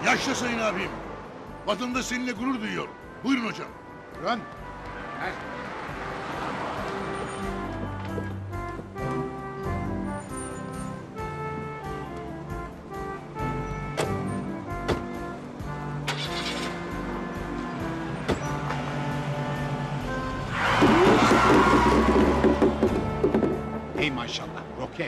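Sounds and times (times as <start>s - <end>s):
background music with held notes: 0.0s - 25.0s
car pulling away at speed: 5.5s - 12.4s, 15.9s - 23.9s.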